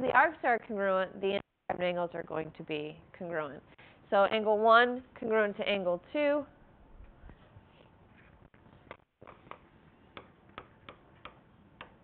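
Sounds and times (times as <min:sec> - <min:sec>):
stylus tapping on whiteboard: 0:08.9 - 0:12.0.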